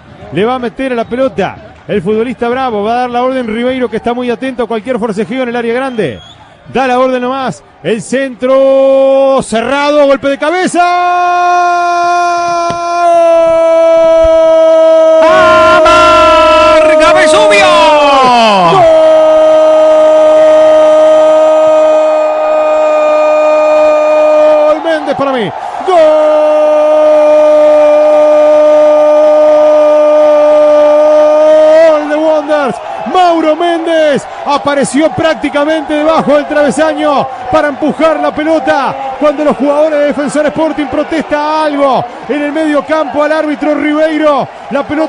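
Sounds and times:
man shouting long goal cry: 10.4s - 45.0s.

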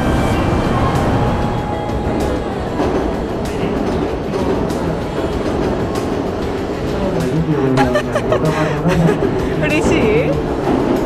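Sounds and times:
train rail rumble: 0.0s - 11.0s.

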